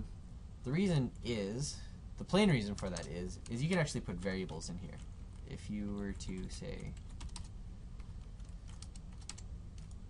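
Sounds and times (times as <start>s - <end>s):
low steady hum: 0.0s - 10.0s
computer keyboard typing: 2.7s - 10.0s.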